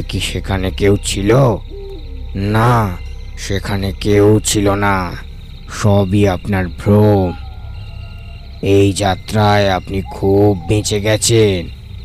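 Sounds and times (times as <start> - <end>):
man calling out: 0.0 - 1.7, 2.4 - 7.4, 8.6 - 11.7.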